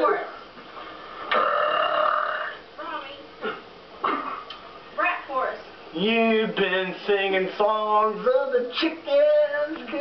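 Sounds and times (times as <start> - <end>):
man belching: 1.3 - 2.6.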